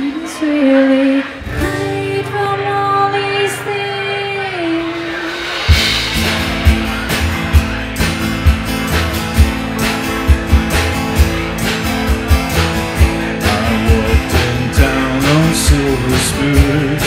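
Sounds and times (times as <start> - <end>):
live pop-rock band with singing: 0.0 - 17.0
strummed acoustic guitars: 0.1 - 17.0
drums on a steady beat: 4.8 - 17.0.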